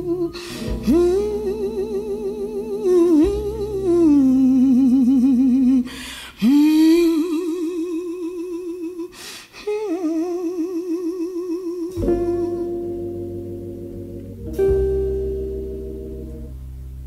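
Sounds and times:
low organ and bass tones: 0.0s - 5.9s, 11.9s - 17.0s
woman humming wordlessly: 0.0s - 12.9s.

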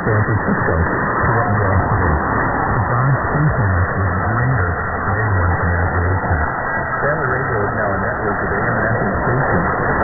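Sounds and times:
static hiss: 0.0s - 10.0s
weak am radio broadcast: 0.0s - 10.0s.

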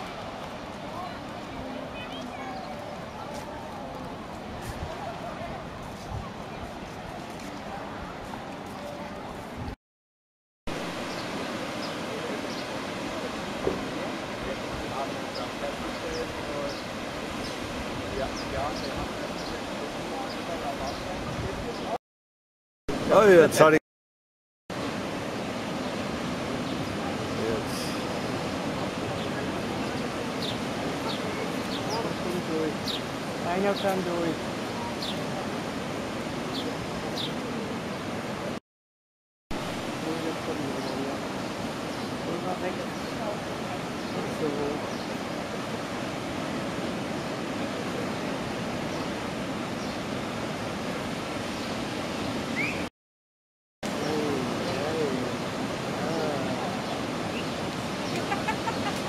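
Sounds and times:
waves washing on a beach: 0.0s - 9.8s, 10.7s - 22.0s, 22.9s - 23.8s, 24.7s - 38.6s, 39.6s - 52.9s, 53.9s - 59.0s
surf breaking on shore: 10.7s - 22.0s, 22.9s - 23.8s, 24.7s - 38.6s, 39.5s - 52.9s, 53.8s - 59.0s
bird chirps: 52.6s - 52.9s.

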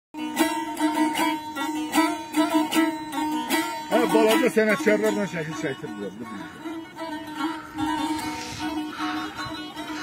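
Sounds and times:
plucked string melody: 0.2s - 10.0s.

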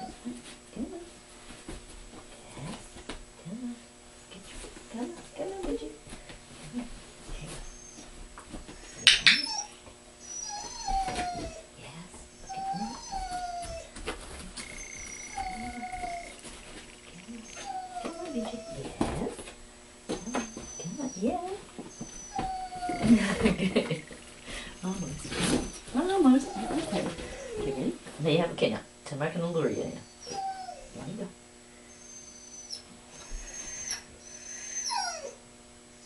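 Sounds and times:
dog whimpering: 0.0s - 1.0s, 6.7s - 8.1s, 8.7s - 11.7s, 12.4s - 19.4s, 20.1s - 28.0s, 29.7s - 31.2s, 31.9s - 35.4s.

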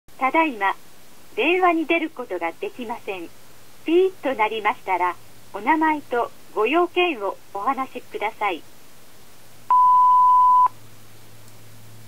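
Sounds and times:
faint low hum: 0.1s - 12.0s
answering machine beep: 9.7s - 10.7s.

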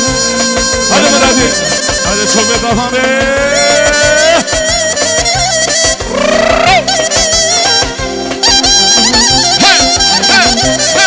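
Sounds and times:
steady low drum beat: 0.0s - 7.0s
folk dance band melody: 0.0s - 11.0s.

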